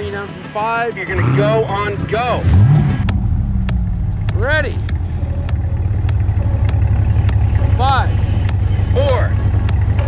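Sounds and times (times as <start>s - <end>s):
car engines idling: 0.0s - 10.0s.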